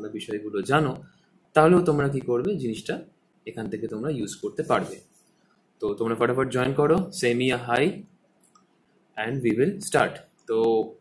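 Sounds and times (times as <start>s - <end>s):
man speaking: 0.0s - 5.2s, 5.8s - 8.1s, 9.2s - 11.0s.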